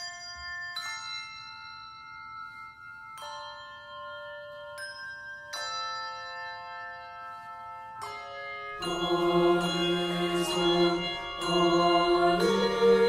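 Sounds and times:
handbells ringing chords: 0.0 - 13.0.

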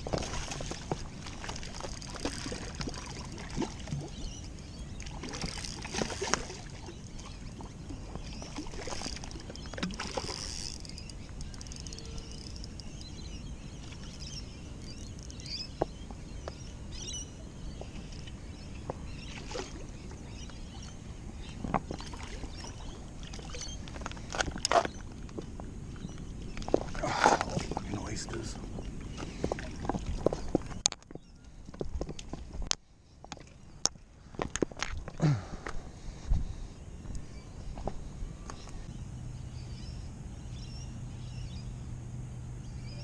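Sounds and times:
water lapping against rocks: 26.5 - 30.8.

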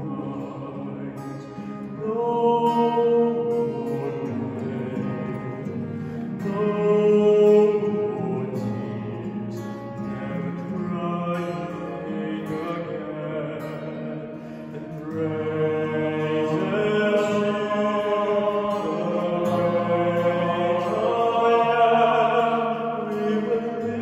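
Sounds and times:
acoustic guitar: 0.0 - 24.0
male choir singing a hymn: 0.0 - 24.0.

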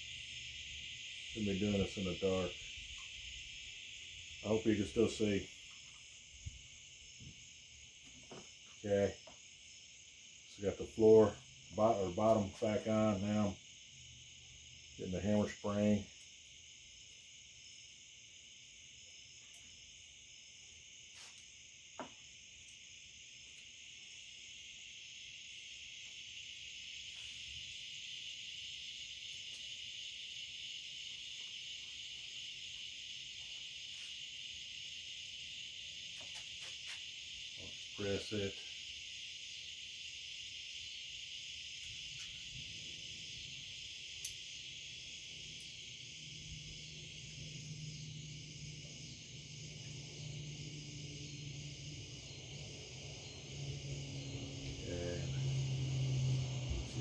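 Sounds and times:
crickets chirring: 0.0 - 57.0.

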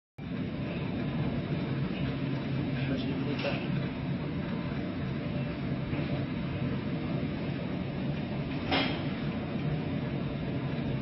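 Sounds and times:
ship engine drone: 0.2 - 11.0.

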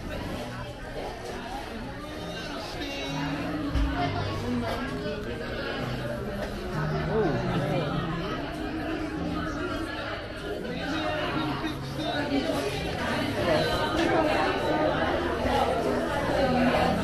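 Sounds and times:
chatter of people talking: 0.0 - 17.0.

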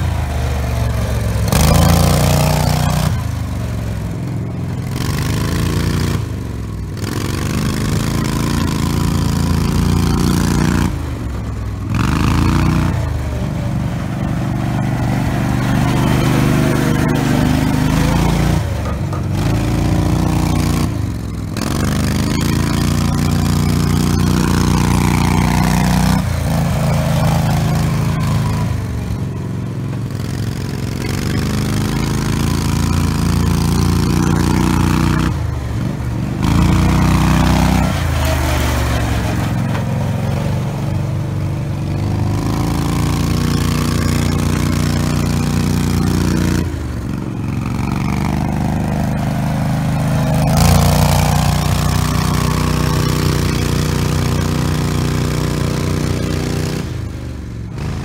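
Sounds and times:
atv engine running under load: 0.0 - 58.0.

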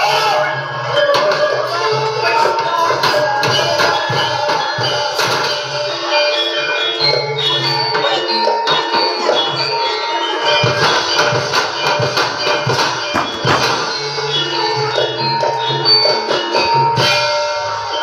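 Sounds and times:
gamelan ringing struck notes: 0.0 - 18.0
drum strokes: 10.5 - 15.6.

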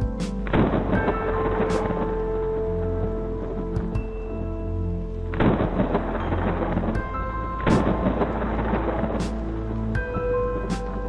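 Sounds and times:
slow music of held tones: 0.0 - 11.0.

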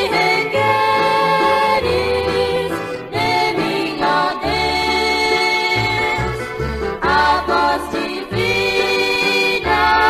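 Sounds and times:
female group singing in harmony: 0.0 - 10.0
instrumental accompaniment with bass: 0.0 - 10.0.

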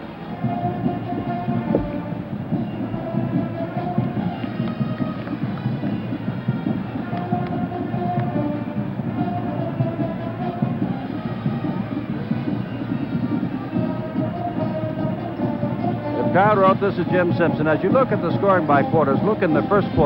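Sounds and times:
crowd rumble: 0.0 - 20.0
band playing brass notes: 0.2 - 20.0.

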